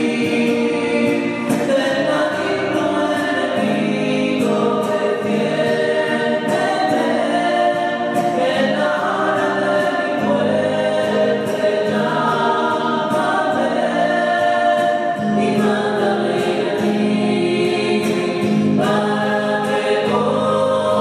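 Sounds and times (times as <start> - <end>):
mixed choir singing in harmony: 0.0 - 21.0.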